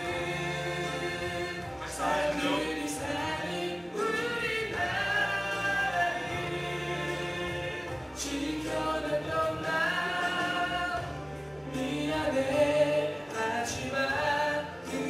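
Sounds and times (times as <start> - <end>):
accompanying music with bass: 0.0 - 15.0
men singing in harmony: 0.0 - 15.0.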